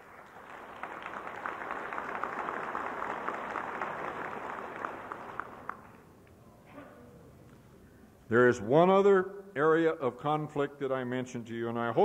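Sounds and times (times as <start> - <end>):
audience applauding: 0.0 - 6.1.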